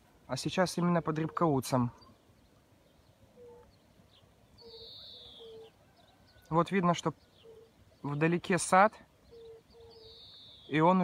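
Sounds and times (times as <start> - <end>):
distant bird calls: 0.0 - 11.0.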